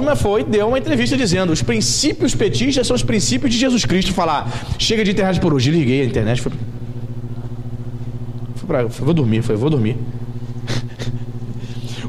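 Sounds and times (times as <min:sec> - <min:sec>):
man talking: 0:00.0 - 0:06.6, 0:08.6 - 0:10.0
low electrical hum: 0:00.0 - 0:12.0.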